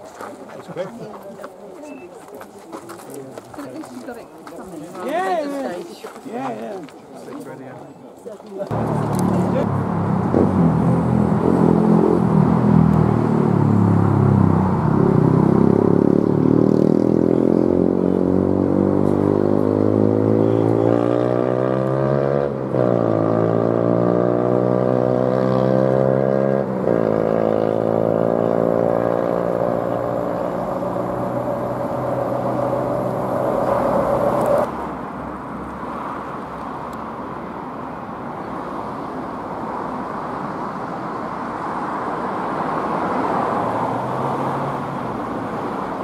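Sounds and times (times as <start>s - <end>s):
engine accelerating hard: 8.7s - 34.7s.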